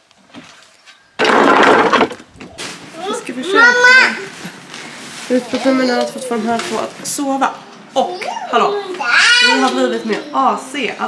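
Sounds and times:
stair section crashing onto scrap pile: 1.2s - 2.9s.

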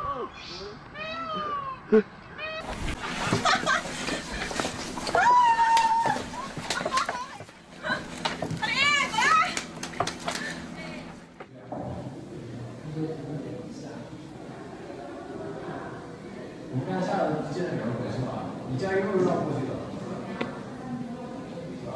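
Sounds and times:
background chatter: 0.0s - 21.9s.

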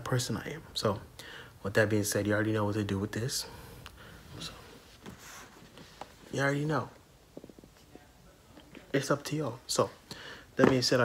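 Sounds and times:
man speaking: 0.0s - 3.6s, 6.3s - 7.0s, 7.8s - 10.0s, 10.6s - 11.0s.

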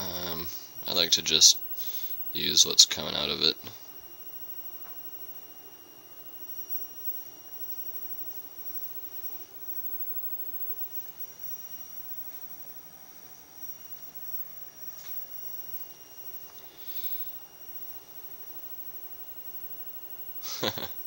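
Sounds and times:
high-pitched electronic whine: 0.0s - 21.0s
low hiss: 0.0s - 21.0s.

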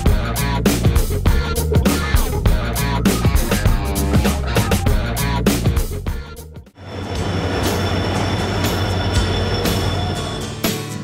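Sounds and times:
background music: 0.0s - 11.0s
high squeal from wheels: 6.8s - 11.0s
train coaches rumbling: 6.8s - 11.0s.

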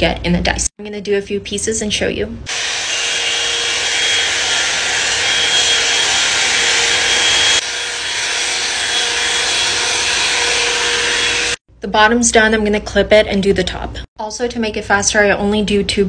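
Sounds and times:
hot-air brush blowing: 2.5s - 11.6s
motor whine: 2.5s - 11.6s.

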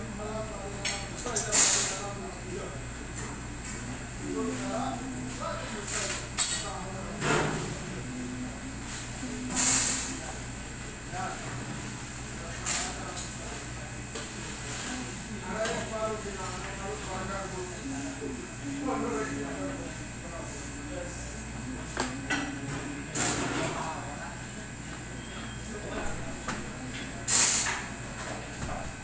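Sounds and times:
indistinct talk: 0.0s - 29.0s
steady low hum: 0.0s - 29.0s.

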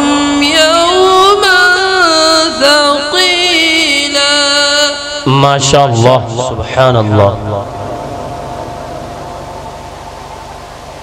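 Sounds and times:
public address system hiss and hum: 0.0s - 11.0s
steady ringing tone: 6.3s - 11.0s.

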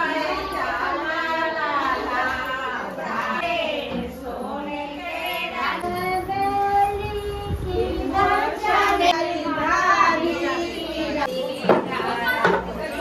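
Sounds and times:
women singing in high voices: 0.0s - 13.0s.

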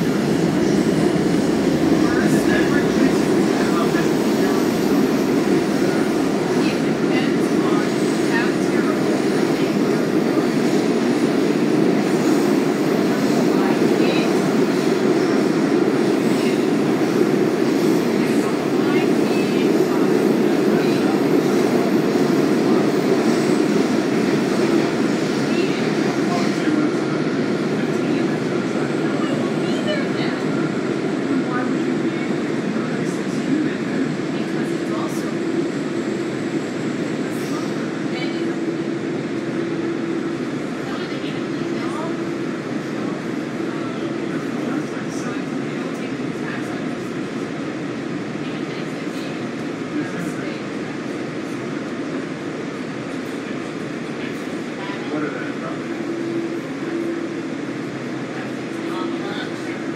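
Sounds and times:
metro car rumble on rails: 0.0s - 59.9s.

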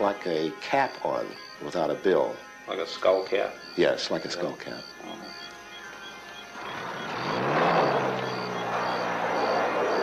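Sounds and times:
soft background music: 0.0s - 9.7s
jeep engine revving: 5.8s - 10.0s.

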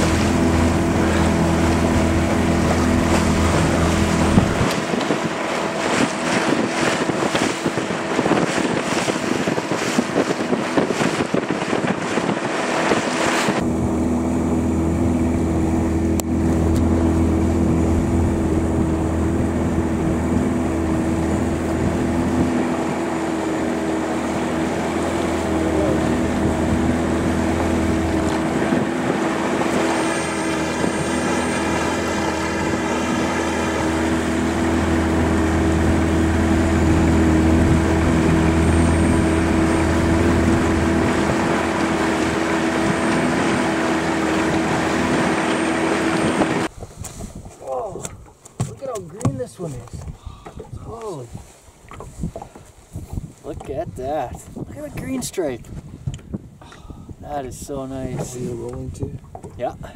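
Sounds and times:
outboard motor running: 0.0s - 59.9s
rushing water: 0.0s - 59.9s
wind: 0.0s - 59.9s.

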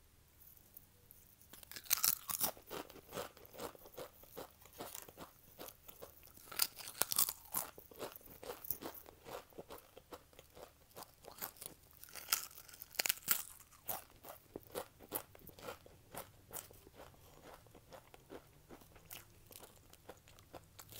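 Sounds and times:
crunching potato crisps: 1.4s - 20.9s.

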